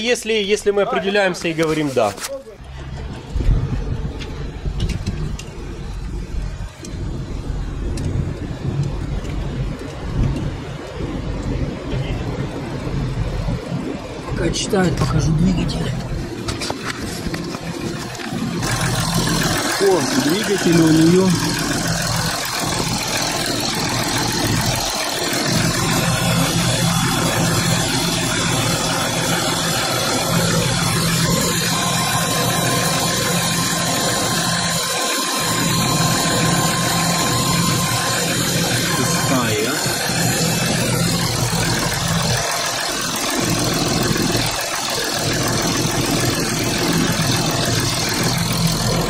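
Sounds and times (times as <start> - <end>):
car engine idling: 0.0 - 49.0.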